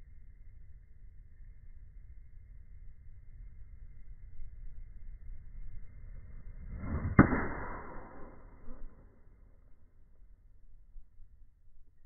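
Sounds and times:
club striking golf ball: 6.7 - 9.1.

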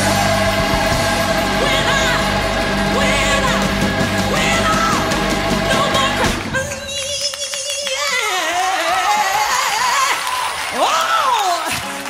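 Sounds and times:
person singing wordless run: 0.8 - 10.2.

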